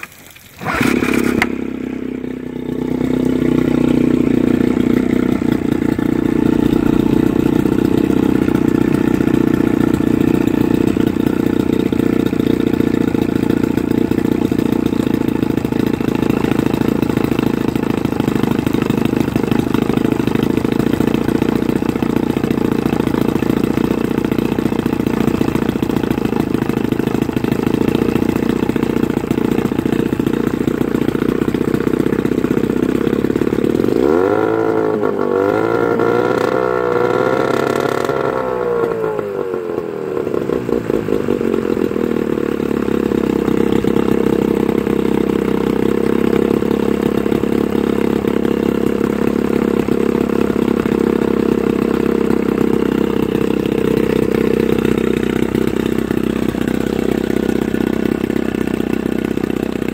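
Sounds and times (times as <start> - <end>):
outboard motor idling: 0.0 - 59.9.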